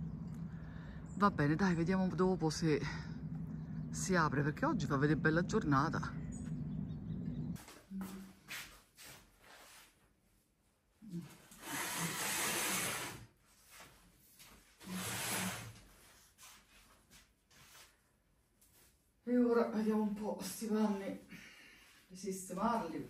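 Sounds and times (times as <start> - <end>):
low steady hum: 0.0 - 7.6.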